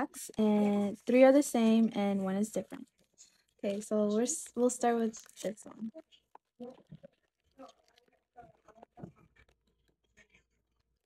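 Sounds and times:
foil pack crinkling and tearing: 5.0s - 5.6s.

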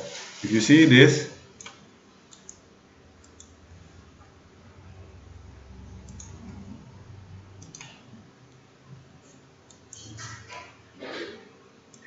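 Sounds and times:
low background hum: 0.0s - 12.0s
computer mouse clicks: 1.6s - 2.6s, 3.2s - 3.6s, 6.0s - 6.5s, 7.6s - 8.6s, 9.7s - 10.4s.

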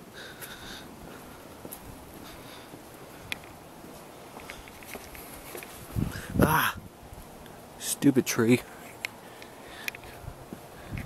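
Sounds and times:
steady wind noise: 0.0s - 11.0s.

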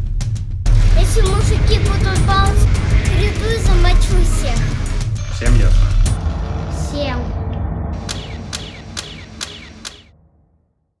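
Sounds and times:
low music: 0.7s - 9.6s
sharp clicks with falling tone: 8.0s - 10.1s.

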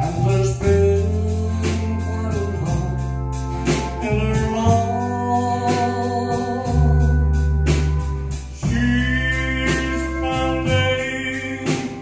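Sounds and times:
bass guitar: 0.0s - 12.0s
pedal steel guitar held notes: 0.0s - 12.0s
steady drum beat: 0.0s - 12.0s.

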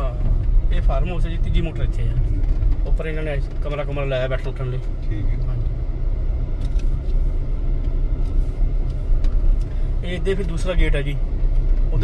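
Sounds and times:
car driving rumble inside cabin: 0.0s - 12.0s.

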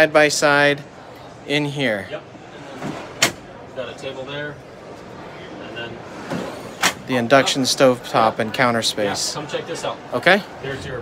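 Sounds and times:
exhibition hall hum: 0.0s - 11.0s.

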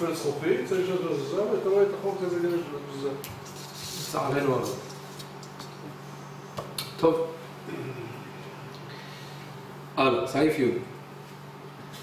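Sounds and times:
man humming: 7.6s - 8.3s.

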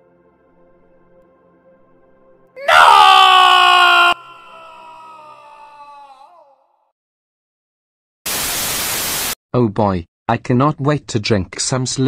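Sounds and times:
crying wail: 2.6s - 6.8s.

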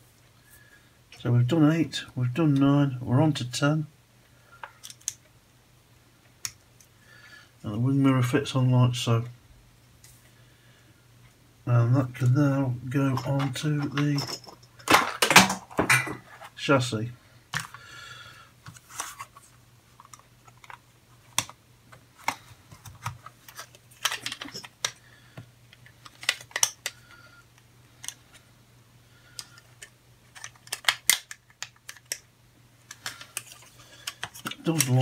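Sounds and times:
plastic parts clicking and rattling: 4.6s - 5.2s, 13.1s - 16.4s, 20.0s - 25.0s, 25.7s - 27.1s, 28.0s - 28.4s, 29.4s - 35.0s.

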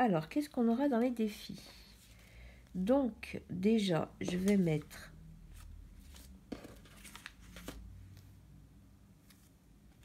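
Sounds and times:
paper banknotes rustling: 5.5s - 8.2s.

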